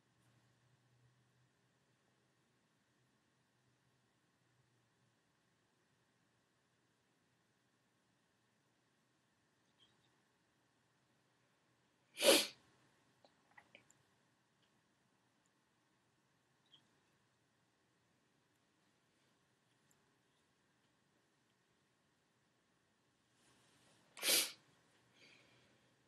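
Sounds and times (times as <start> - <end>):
person sneezing: 12.2 - 12.6, 24.2 - 24.6.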